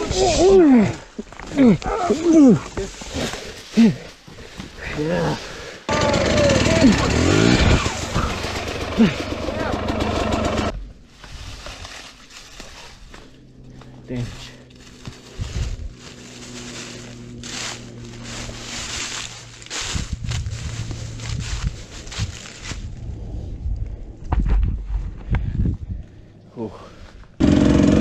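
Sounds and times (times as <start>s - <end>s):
faint dirt bike engine idling: 2.4s - 24.2s
dry leaves crackling underfoot: 10.9s - 23.1s.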